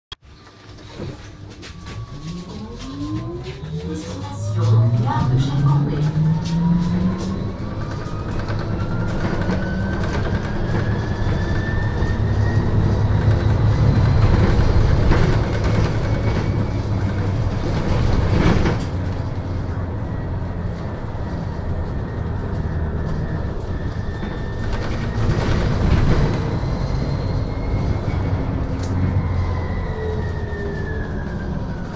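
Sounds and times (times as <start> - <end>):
low rumble of running bus: 0.3 - 31.9.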